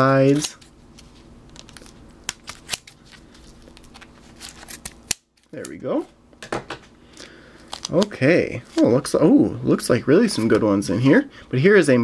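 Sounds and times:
cards and tape rustling: 0.0 - 5.8, 7.1 - 8.9.

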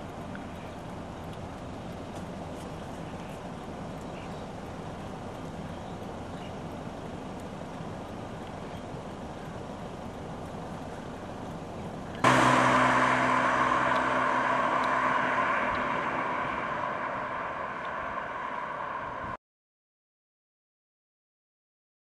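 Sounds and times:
distant combine harvester: 0.0 - 19.4
passing road vehicle engine: 12.2 - 19.4.

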